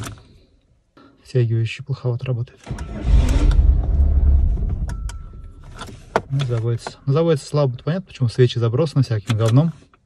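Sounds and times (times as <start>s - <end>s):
car engine starting up: 2.6s - 7.1s.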